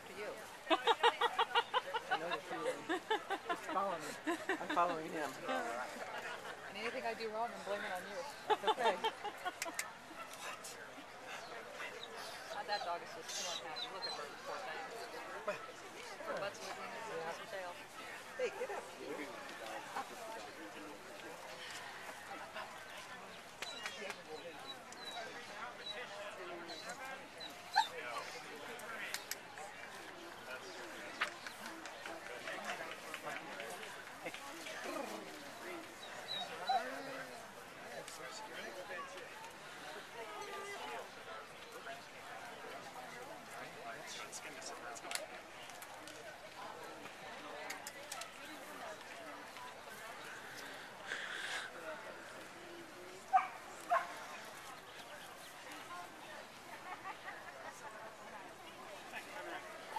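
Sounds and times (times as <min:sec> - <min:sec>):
murmur of people talking: 0:00.0 - 0:59.9.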